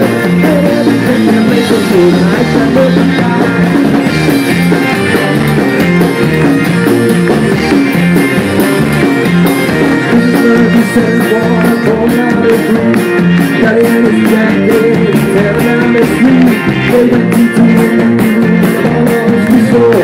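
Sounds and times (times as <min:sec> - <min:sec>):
driving drum beat: 0:00.0 - 0:20.0
electric guitar: 0:00.0 - 0:20.0.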